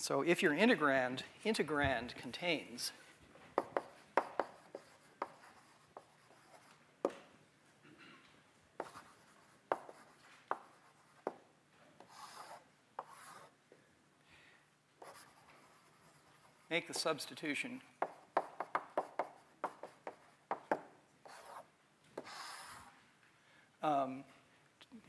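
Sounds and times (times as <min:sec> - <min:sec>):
chalk scratching strokes: 0:03.6 - 0:06.7, 0:08.8 - 0:11.4, 0:12.0 - 0:13.6, 0:15.0 - 0:17.2, 0:18.0 - 0:23.0
chalk tapping on blackboard: 0:03.6 - 0:07.2, 0:08.8 - 0:13.5, 0:15.0 - 0:17.2, 0:18.0 - 0:22.9.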